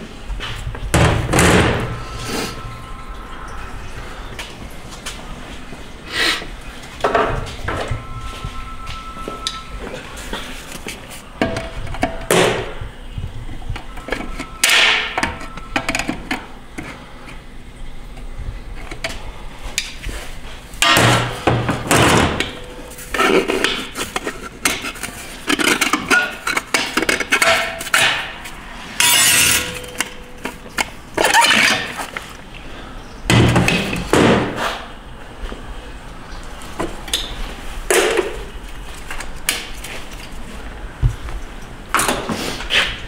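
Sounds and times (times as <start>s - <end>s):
metal parts clanking and scraping: 20.8s - 32.4s.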